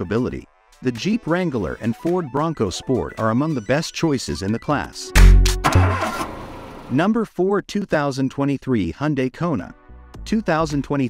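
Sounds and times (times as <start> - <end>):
car engine starting and revving: 5.2 - 6.9.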